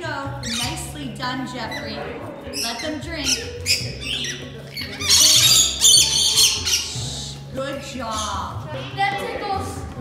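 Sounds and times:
lorikeets screeching: 0.4 - 1.0, 1.6 - 7.4, 8.0 - 8.6
children's voices: 8.6 - 10.0.

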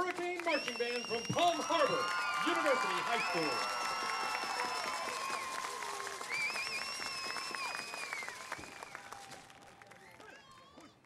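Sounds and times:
crowd applauding: 0.0 - 11.0
high-pitched cheering: 0.4 - 9.4.

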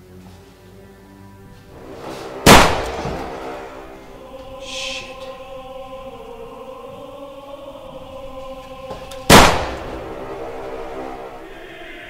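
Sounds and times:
choral music: 0.0 - 12.0
loud pistol shot with echo: 2.5 - 3.0, 9.3 - 10.0
short high hiss: 4.6 - 5.3.

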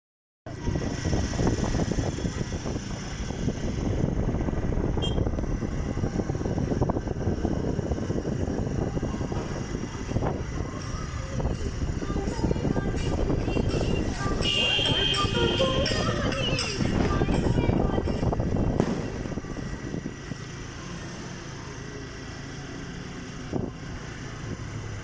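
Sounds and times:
road vehicle rumble: 0.4 - 25.0.

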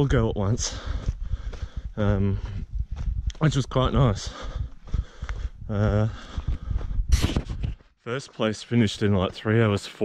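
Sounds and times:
footsteps on dirt trail: 0.0 - 10.0.

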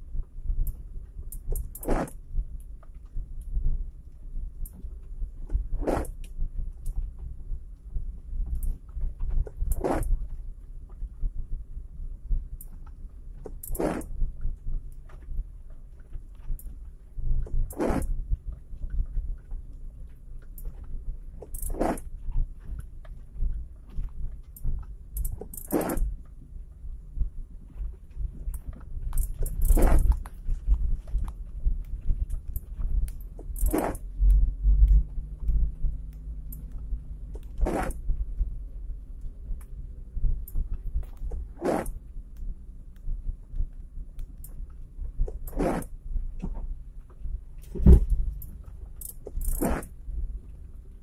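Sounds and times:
suspension thumps and rattles: 0.0 - 43.5, 44.4 - 50.9
vehicle driving on rough dirt track: 0.0 - 51.0
car cabin engine rumble: 45.2 - 51.0.

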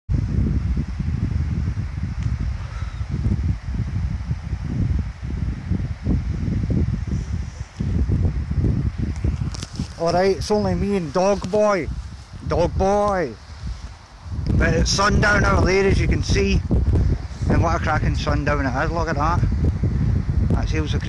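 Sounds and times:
wind buffeting microphone: 0.1 - 21.0.

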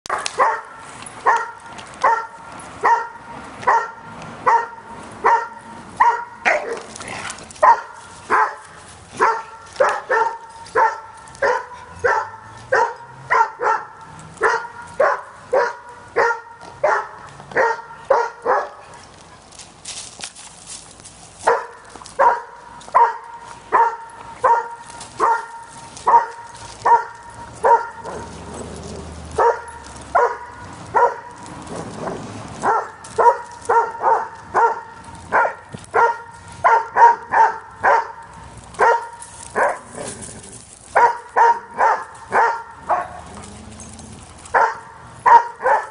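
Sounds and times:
dog barking: 0.1 - 6.9, 7.6 - 18.9, 21.4 - 28.3, 29.4 - 31.3, 32.6 - 40.1, 41.0 - 43.3, 44.5 - 45.9.

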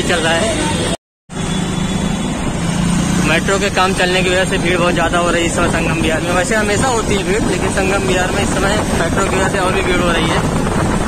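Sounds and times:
rush of traffic noise: 0.0 - 11.0
engine running steadily: 0.1 - 11.0.

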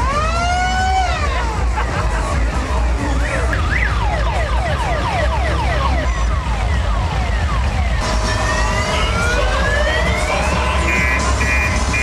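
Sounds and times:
steady low rumble: 0.5 - 12.0
high siren-like gliding tone: 3.4 - 12.0.

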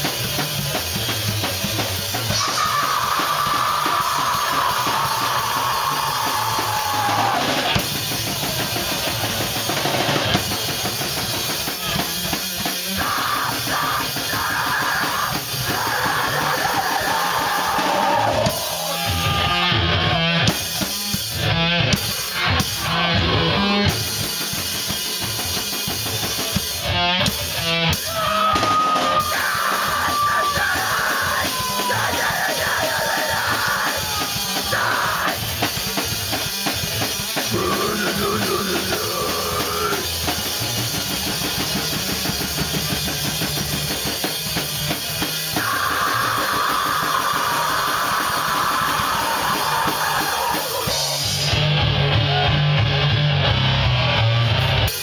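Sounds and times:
electric guitar: 0.0 - 55.0
heavy rock band playing: 0.0 - 55.0
person shouting vocals: 13.0 - 19.6, 28.1 - 35.5, 37.5 - 40.1.

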